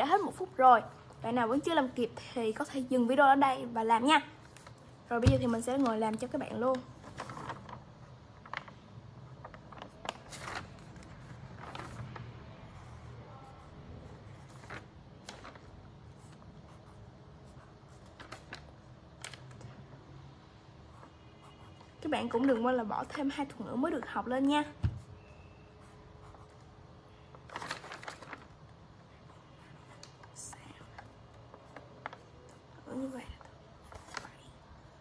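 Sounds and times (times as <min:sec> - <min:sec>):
paper rustling: 0:05.5 - 0:12.4, 0:14.3 - 0:16.4, 0:17.9 - 0:19.8, 0:27.4 - 0:28.6
pencil scratching on paper: 0:25.8 - 0:26.6.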